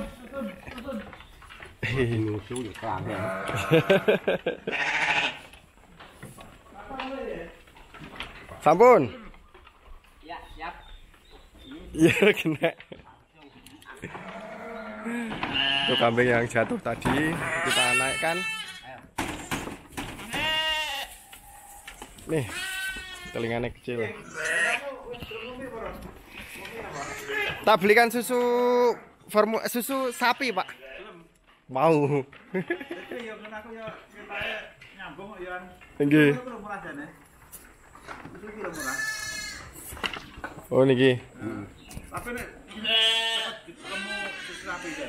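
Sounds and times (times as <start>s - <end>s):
lamb bleating: 3.1s - 4.0s, 4.7s - 5.4s, 14.2s - 16.2s, 17.4s - 18.9s, 20.2s - 21.8s, 22.4s - 23.4s, 24.2s - 25.3s, 26.8s - 27.6s, 38.7s - 39.7s, 42.7s - 45.0s.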